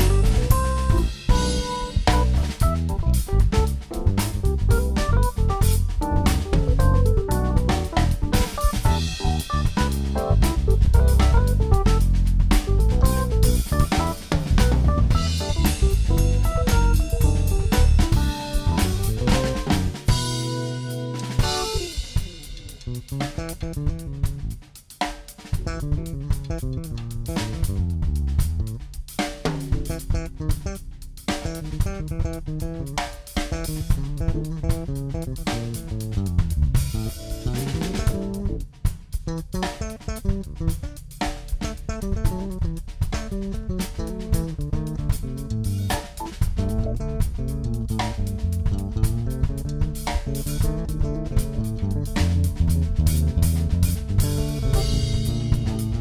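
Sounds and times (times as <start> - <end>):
electric bass: 0.0 - 24.8, 25.4 - 56.0
drum kit: 0.0 - 56.0.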